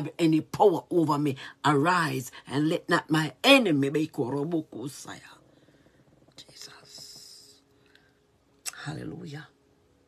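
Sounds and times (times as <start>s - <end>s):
woman whispering: 6.3s - 7.7s.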